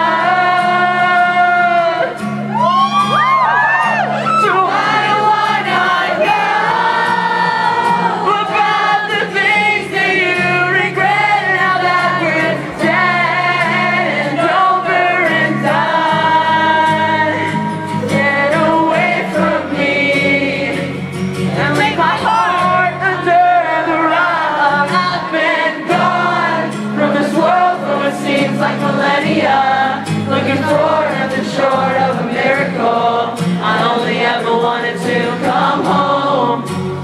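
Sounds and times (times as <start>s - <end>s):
person singing: 0.0s - 36.8s
strummed acoustic guitar: 0.0s - 37.0s.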